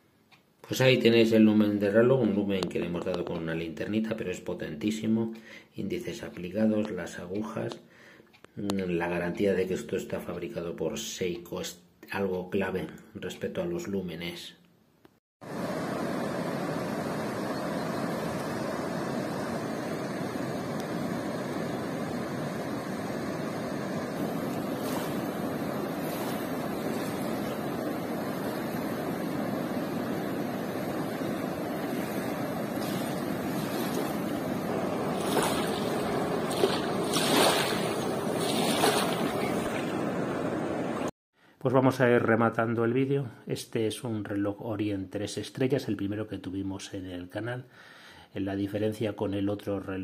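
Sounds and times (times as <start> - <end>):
river rushing over a weir: 15.5 - 41.1.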